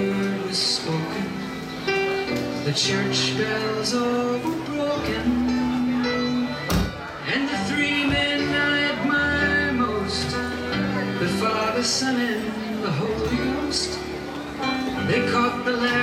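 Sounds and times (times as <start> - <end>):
live band playing: 0.0 - 16.0.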